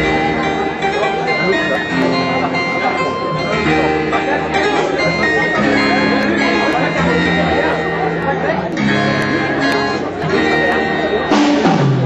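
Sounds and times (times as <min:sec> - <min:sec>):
amplified electric guitars: 0:00.0 - 0:12.0
live rock band playing: 0:00.0 - 0:12.0.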